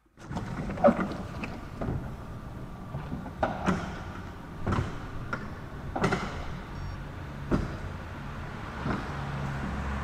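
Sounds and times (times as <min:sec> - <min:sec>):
garage door rolling up: 0:00.2 - 0:10.0.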